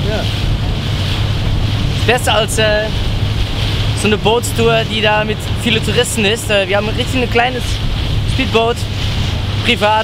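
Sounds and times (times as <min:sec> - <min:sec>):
speedboat engine rumbling: 0:00.0 - 0:10.0
water rushing along hull: 0:00.0 - 0:10.0
wind buffeting microphone: 0:00.0 - 0:10.0.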